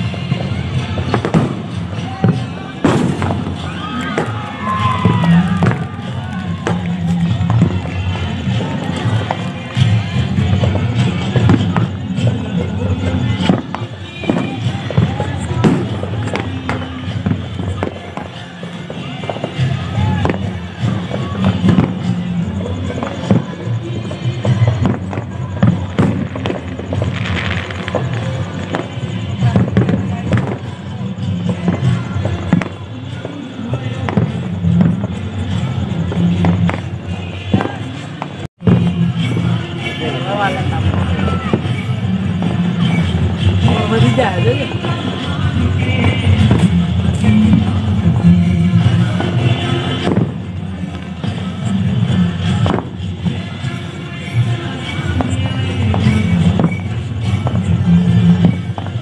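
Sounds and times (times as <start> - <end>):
fireworks and firecrackers banging: 0.0 - 59.0
music: 0.0 - 59.0
voices: 0.0 - 59.0.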